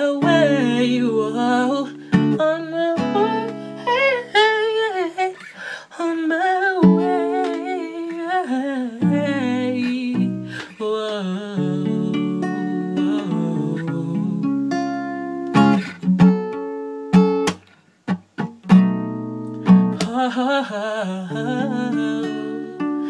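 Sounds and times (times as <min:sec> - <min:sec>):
person singing wordless melody: 0:00.0 - 0:15.0, 0:19.9 - 0:23.0
acoustic guitar: 0:00.0 - 0:23.0.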